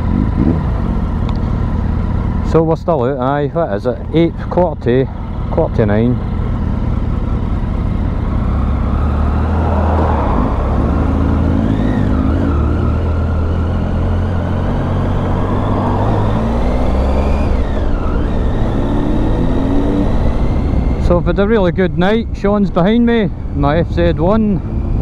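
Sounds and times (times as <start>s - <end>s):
motorcycle engine running: 0.0s - 25.0s
road noise: 0.0s - 25.0s.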